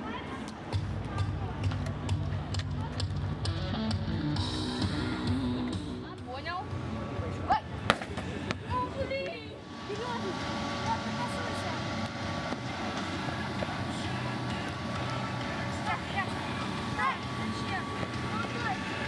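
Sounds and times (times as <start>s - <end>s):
faint constant hum: 0.0s - 19.0s
outdoor murmur: 0.0s - 19.0s.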